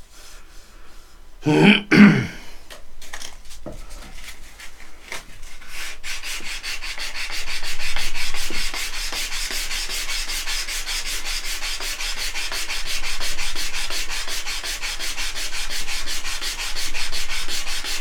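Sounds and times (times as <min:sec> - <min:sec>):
hand sanding wood: 0:04.2 - 0:18.0.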